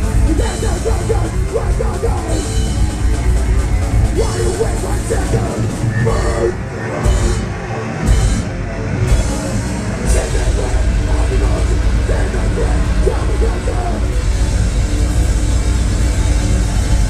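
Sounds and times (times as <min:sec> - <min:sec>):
distorted guitars and bass: 0:00.0 - 0:17.0
pounding drum kit: 0:00.0 - 0:17.0.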